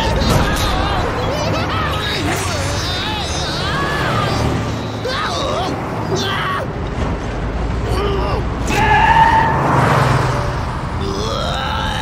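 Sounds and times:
man yelling in alarm: 0:00.0 - 0:06.7
cartoon truck engine rumbling: 0:00.0 - 0:12.0.

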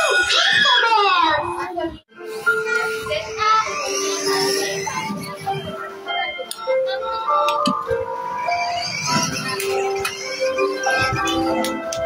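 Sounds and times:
simple electronic melody: 0:02.1 - 0:12.0.

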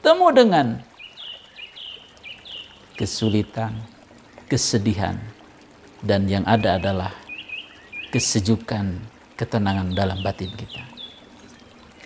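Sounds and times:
bird chirping: 0:00.9 - 0:04.6, 0:06.3 - 0:08.4, 0:09.2 - 0:12.0.

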